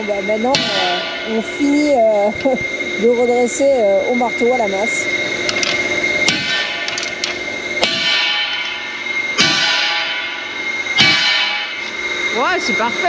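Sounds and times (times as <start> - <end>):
sledgehammer striking steel: 0.5 - 1.4, 6.2 - 7.2, 7.8 - 11.9.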